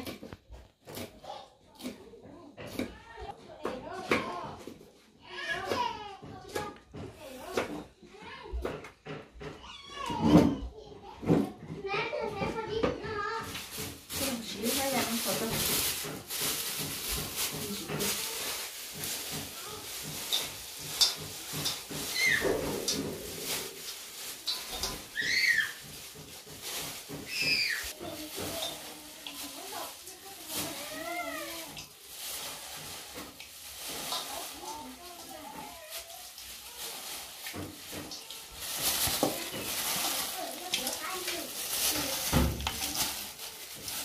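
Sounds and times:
plastic bag crinkling: 12.6 - 44.0.

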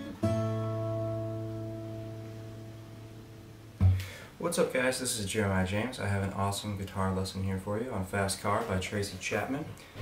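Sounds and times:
acoustic guitar chord ringing: 0.0 - 4.3.

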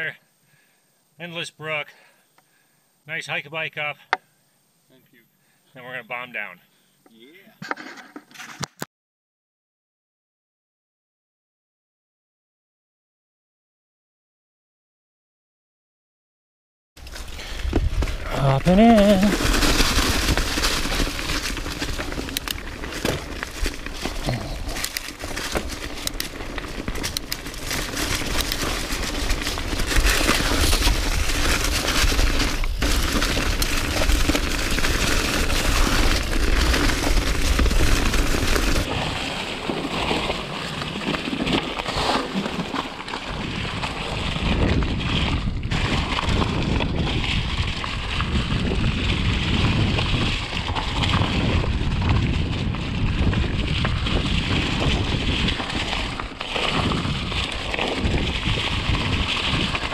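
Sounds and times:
bike rattling over rough ground: 17.0 - 59.9
tyres crackling through dry leaves: 17.0 - 59.9
wind buffeting microphone: 43.4 - 59.9.

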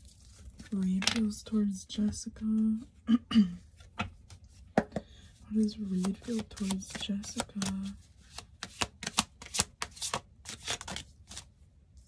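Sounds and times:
cards being shuffled by hand: 5.6 - 12.0.

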